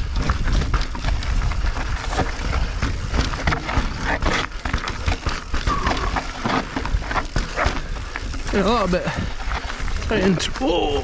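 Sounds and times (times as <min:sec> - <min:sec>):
bike rattling over rocks: 0:00.0 - 0:11.0
wind rumble on microphone: 0:00.0 - 0:11.0.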